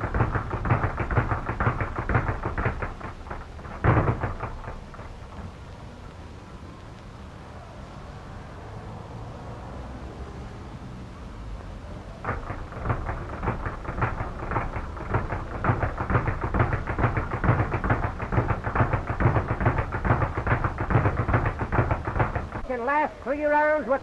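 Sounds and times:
speed bag rattling: 0.0s - 6.2s, 12.2s - 22.7s
steady hiss: 0.0s - 24.0s.

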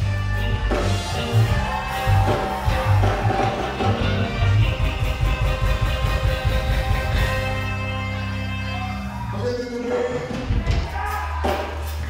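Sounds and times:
electric guitar: 0.0s - 10.8s
keyboard: 0.0s - 12.0s
reggae band playing: 0.0s - 12.0s.

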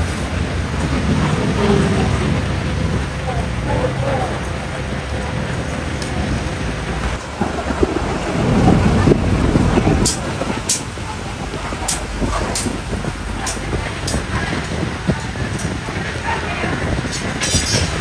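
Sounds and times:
low rumble: 0.0s - 18.0s
metal tongs clicking on grate: 17.1s - 18.0s.

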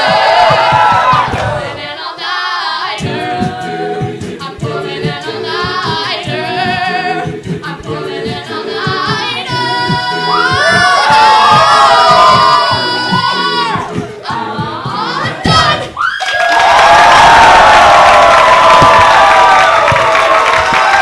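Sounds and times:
a cappella group singing: 0.0s - 16.0s.

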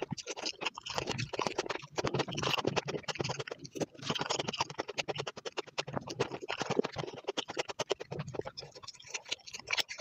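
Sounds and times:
wet crackly chewing: 0.0s - 10.0s.

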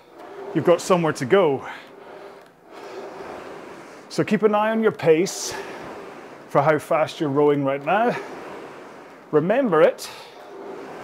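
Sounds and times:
rowing machine flywheel whirring: 0.0s - 11.0s.

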